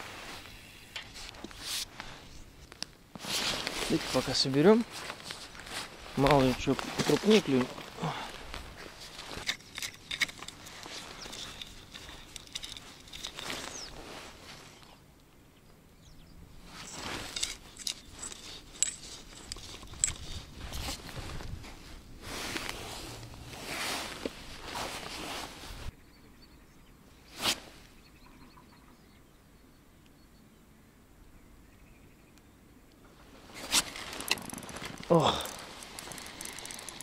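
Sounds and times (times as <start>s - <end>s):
fishing tackle rustling: 0.2s - 15.0s, 16.7s - 25.9s, 33.2s - 37.0s
sharp clicks: 33.8s - 37.0s.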